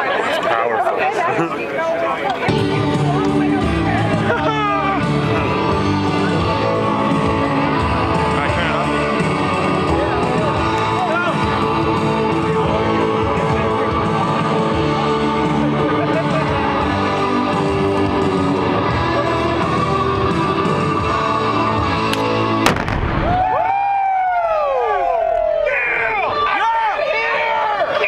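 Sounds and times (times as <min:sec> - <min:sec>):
voices shouting: 0:02.1 - 0:22.5, 0:23.3 - 0:28.0
music playing: 0:02.4 - 0:23.6
explosion blast: 0:22.6 - 0:23.6.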